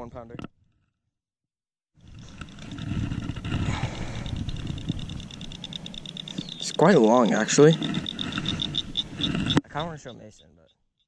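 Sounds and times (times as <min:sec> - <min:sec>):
low rumbling on microphone: 0:02.0 - 0:09.6
high-pitched pulsing animal chorus: 0:02.2 - 0:10.8.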